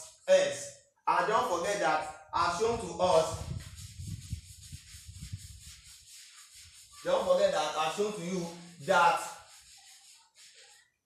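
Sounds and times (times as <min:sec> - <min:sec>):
chalk scratching on blackboard: 0:03.1 - 0:11.0.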